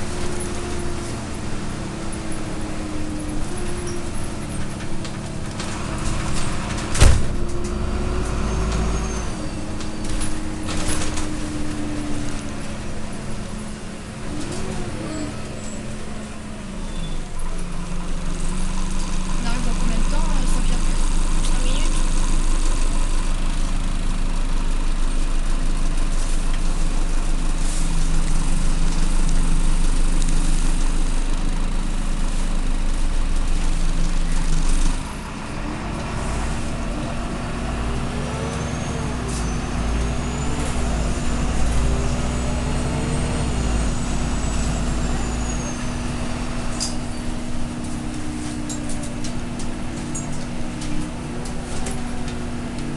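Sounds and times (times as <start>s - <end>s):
bus diesel engine: 0.0s - 52.9s.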